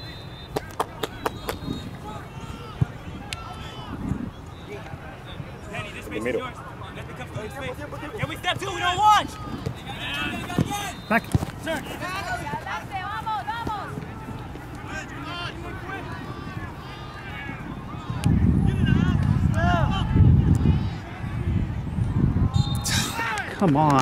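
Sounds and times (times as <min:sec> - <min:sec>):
people shouting: 0:22.5 - 0:23.6.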